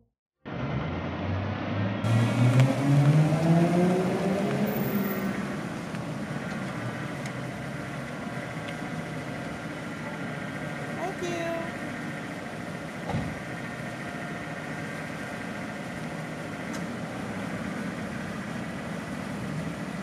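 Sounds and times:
car engine starting and idling: 0.5s - 20.0s.

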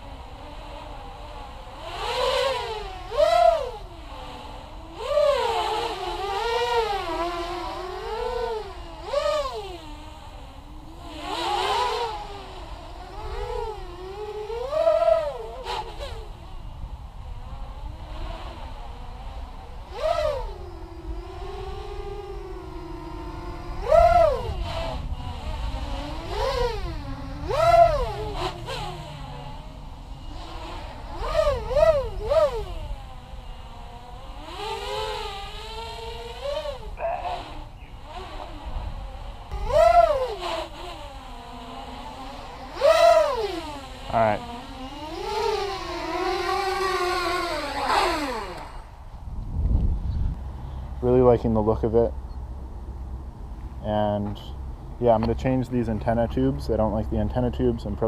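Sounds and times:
quadcopter motors whining: 0.0s - 58.0s.

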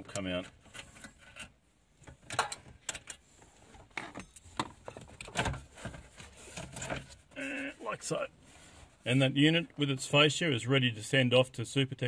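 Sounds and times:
metal and plastic clicks and scrapes: 0.0s - 7.2s.

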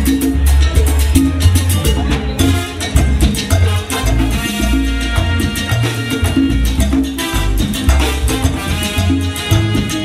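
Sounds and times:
salsa orchestra playing: 0.0s - 10.0s.

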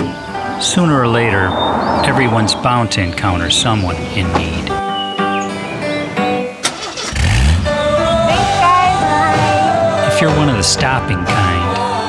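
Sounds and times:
background music: 0.0s - 12.0s
car engine starting and revving: 6.2s - 10.1s.

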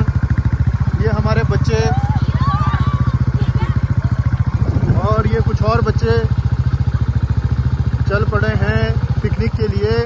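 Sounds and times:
engine running with low pulse: 0.0s - 10.0s.

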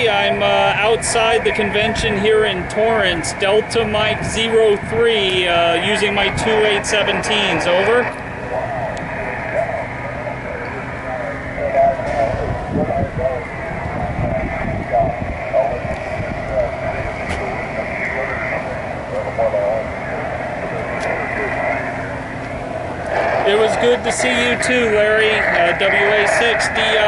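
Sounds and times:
thin radio speech: 0.0s - 22.2s, 23.1s - 27.0s
receiver hiss: 0.0s - 27.0s.

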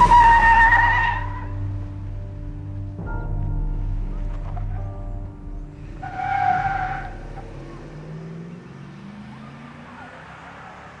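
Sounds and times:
tire squeal: 0.0s - 1.6s, 5.8s - 7.9s, 9.1s - 11.0s
truck engine accelerating away: 5.6s - 11.0s.

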